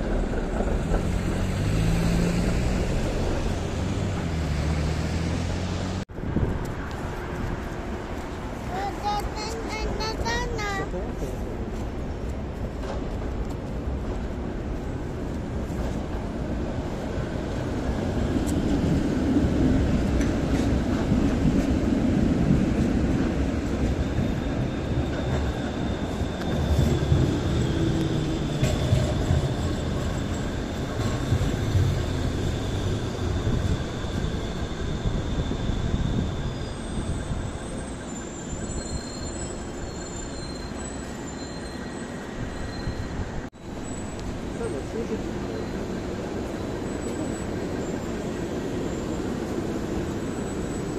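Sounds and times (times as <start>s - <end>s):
tram wheels rumbling on track: 0.0s - 50.9s
high wheel squeal: 23.6s - 50.9s.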